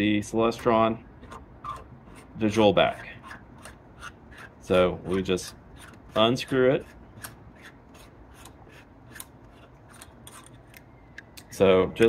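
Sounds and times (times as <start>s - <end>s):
metal clicks and scraping: 5.1s - 11.5s.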